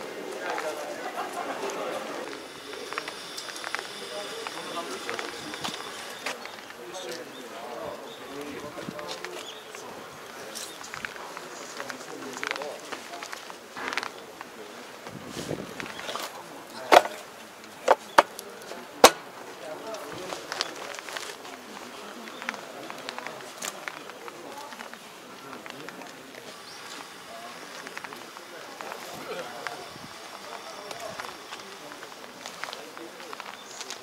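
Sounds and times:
people chattering: 0:00.0 - 0:34.0
footsteps on asphalt: 0:01.6 - 0:34.0.

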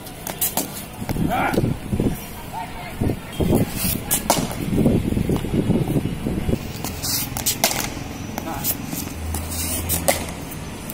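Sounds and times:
cricket ball bouncing on concrete: 0:04.1 - 0:04.6, 0:06.8 - 0:10.9
bat striking ball: 0:04.2 - 0:04.6, 0:07.3 - 0:08.5, 0:10.0 - 0:10.4.

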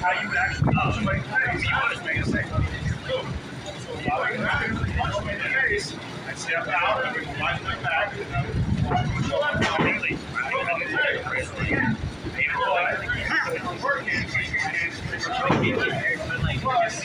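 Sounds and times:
indistinct voices talking: 0:00.0 - 0:17.0.

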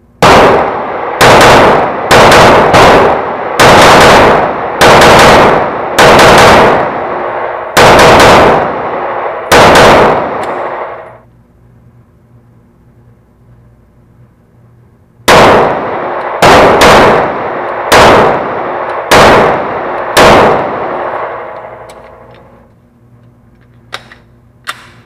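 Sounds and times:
pistol shots echoing: 0:00.2 - 0:11.2, 0:15.3 - 0:22.6.

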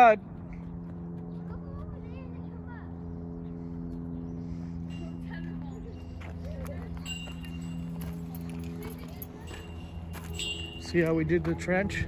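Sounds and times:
low machine hum: 0:00.0 - 0:12.0
faint voices calling: 0:01.2 - 0:12.0.

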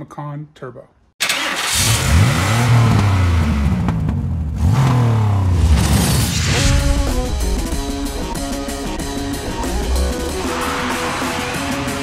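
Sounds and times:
car engine revving: 0:01.3 - 0:12.0.

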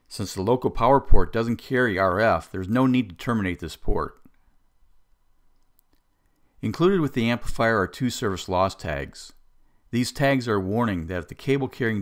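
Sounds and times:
faint clicks: 0:05.1 - 0:06.6.

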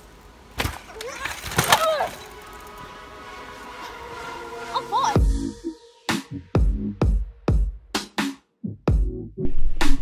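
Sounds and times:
bike hitting the ground: 0:00.5 - 0:02.4.

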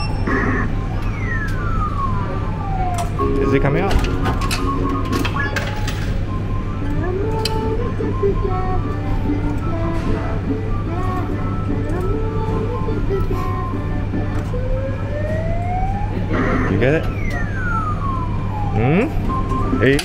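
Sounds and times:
electronic arcade jingle music: 0:00.0 - 0:13.0, 0:13.6 - 0:20.0.

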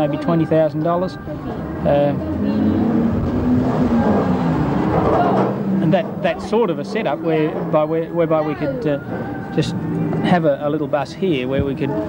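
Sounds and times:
vehicle engine rumble: 0:00.0 - 0:12.0.

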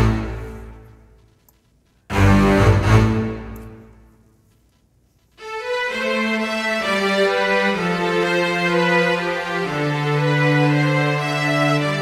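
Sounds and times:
bowed strings playing: 0:02.1 - 0:04.1, 0:05.4 - 0:12.0.

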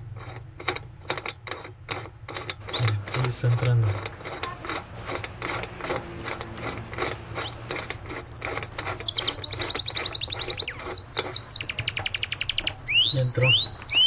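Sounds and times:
nut clicking on metal shaft: 0:00.2 - 0:12.8
songbird trilling: 0:02.6 - 0:04.9, 0:07.4 - 0:14.0.

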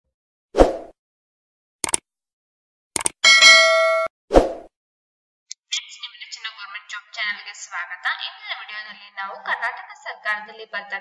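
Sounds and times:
notification bell ding: 0:03.2 - 0:04.1.

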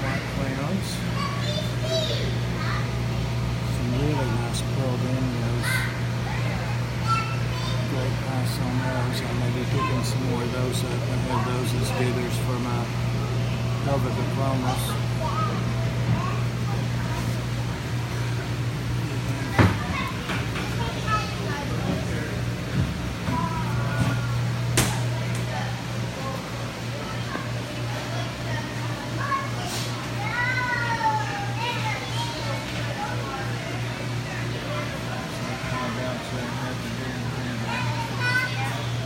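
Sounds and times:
steady low hum: 0:00.0 - 0:39.0.

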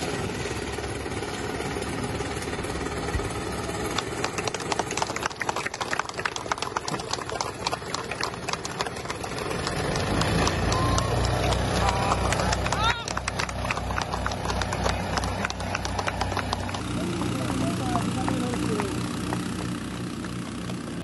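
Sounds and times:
small boat engine running: 0:00.0 - 0:21.0.

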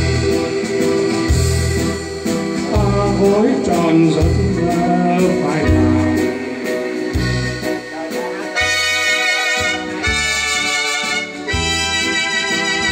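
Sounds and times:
bass notes: 0:00.0 - 0:12.9
electronic keyboard chords: 0:00.0 - 0:12.9
brass-like keyboard voice: 0:07.8 - 0:12.9.

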